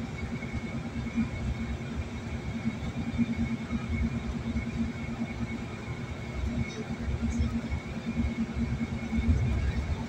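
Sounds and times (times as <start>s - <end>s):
car road and engine rumble: 0.0s - 10.0s.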